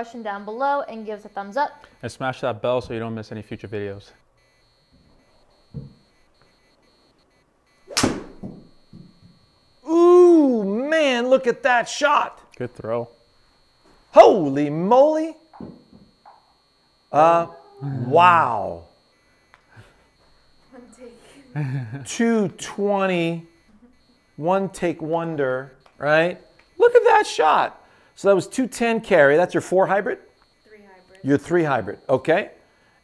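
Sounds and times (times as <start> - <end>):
high-pitched electronic whine: 0.0 - 32.6
golf club striking ball: 7.9 - 8.7
person speaking: 14.1 - 15.4, 17.1 - 18.9.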